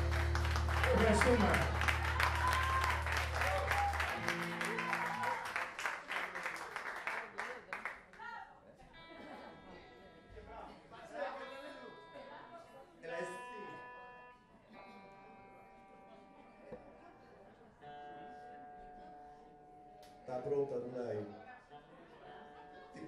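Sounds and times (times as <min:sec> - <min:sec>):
guitar notes and chords: 0:00.0 - 0:05.6, 0:11.7 - 0:21.3
low chatter: 0:00.0 - 0:23.0.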